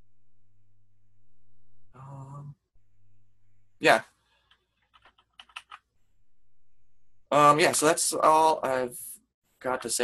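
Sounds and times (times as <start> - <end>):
faint keyboard keystrokes: 4.4 - 5.9.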